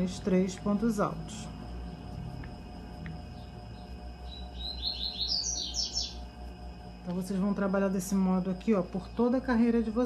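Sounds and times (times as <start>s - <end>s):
bird chirping high notes: 3.3s - 6.2s.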